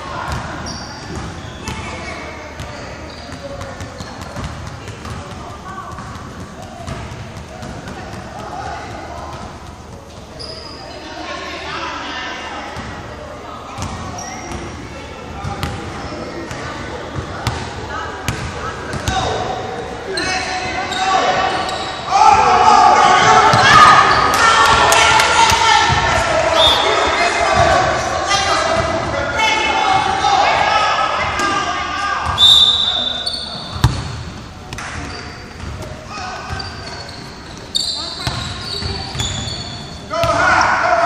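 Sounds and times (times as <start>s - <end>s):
spectators shouting and cheering: 20.5s - 33.2s
basketball bouncing on hardwood floor: 33.8s - 34.1s.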